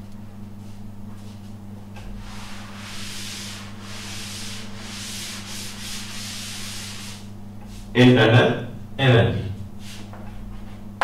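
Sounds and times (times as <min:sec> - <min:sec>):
cloth rubbing on chalkboard: 0:02.1 - 0:07.9.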